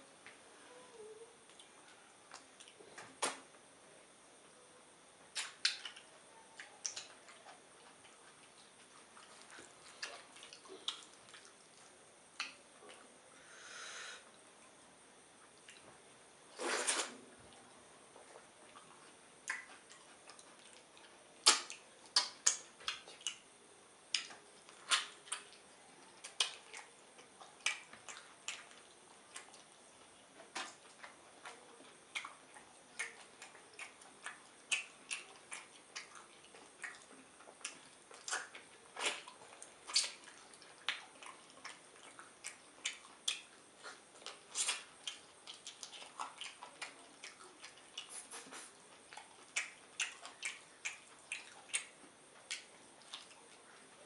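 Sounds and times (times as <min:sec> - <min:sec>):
wet mouth sounds of eating: 0:05.3 - 0:13.1, 0:16.5 - 0:23.5, 0:24.1 - 0:54.0.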